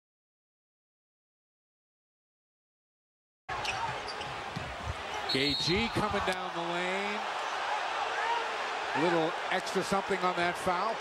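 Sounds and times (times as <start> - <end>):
crowd noise: 3.5 - 11.0.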